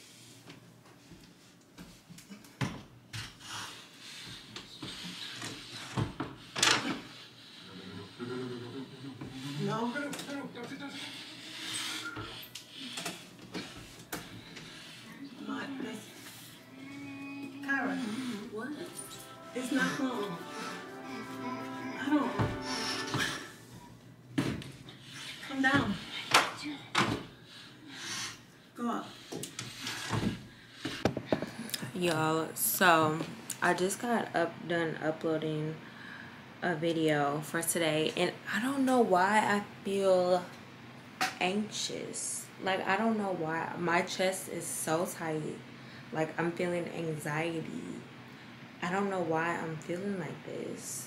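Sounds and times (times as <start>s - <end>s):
person speaking: 16.7s - 23.4s.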